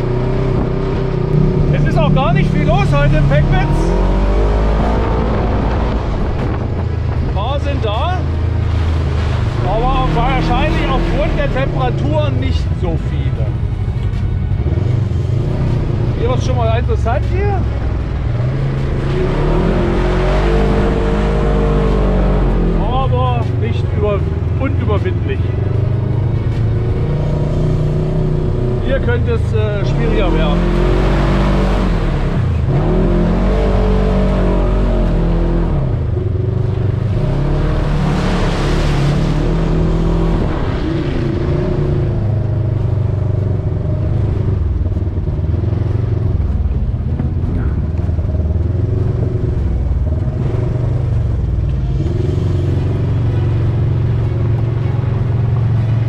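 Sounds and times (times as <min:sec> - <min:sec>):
vehicle engine revving: 0:00.0 - 0:56.0.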